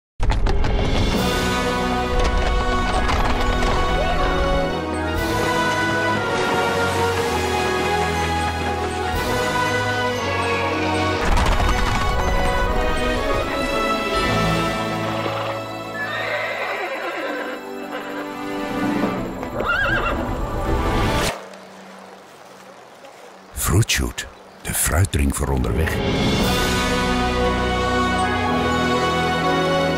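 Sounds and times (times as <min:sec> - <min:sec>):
soundtrack music with held notes: 0:00.5 - 0:29.9
horse neighing: 0:15.1 - 0:20.3.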